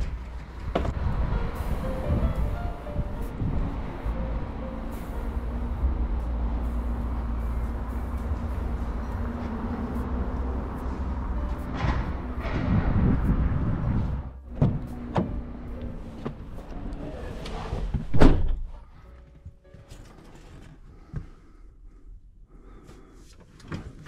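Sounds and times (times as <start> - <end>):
street ambience rumble: 0.0 - 24.0
van cargo door shutting: 11.5 - 13.8, 14.4 - 16.8, 17.6 - 18.7.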